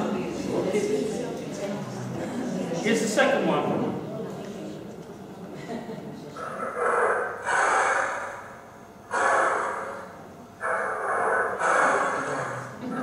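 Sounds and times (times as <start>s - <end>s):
animal call through loudspeakers: 6.4s - 13.0s.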